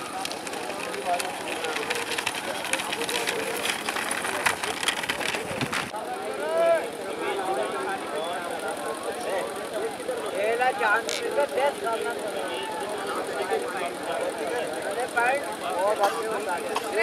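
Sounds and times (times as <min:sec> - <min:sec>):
rapid irregular clattering: 0:00.0 - 0:06.0.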